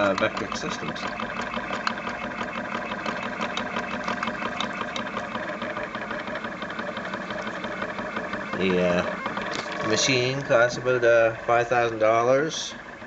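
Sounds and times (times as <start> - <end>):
faint mechanical clicks: 0.0 - 10.8
stepper motors humming: 0.0 - 13.0.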